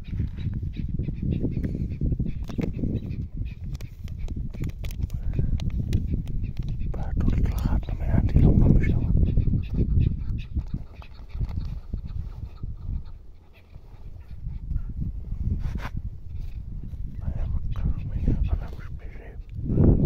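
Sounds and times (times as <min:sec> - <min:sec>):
partridges calling: 0:00.0 - 0:14.9, 0:16.3 - 0:19.5.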